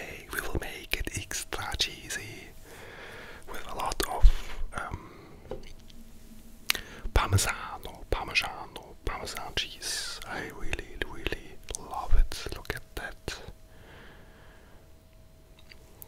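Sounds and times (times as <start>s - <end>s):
close-miked whispering: 0.0s - 5.5s, 6.7s - 13.6s.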